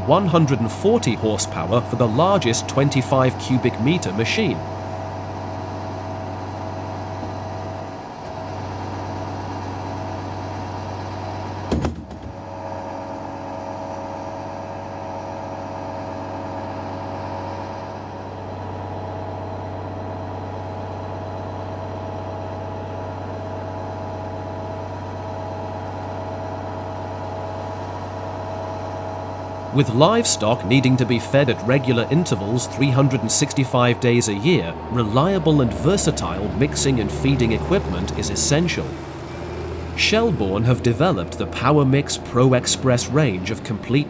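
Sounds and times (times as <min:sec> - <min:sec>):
tractor and feed mixer humming: 0:00.0 - 0:44.0
sharp knock: 0:11.7 - 0:12.3.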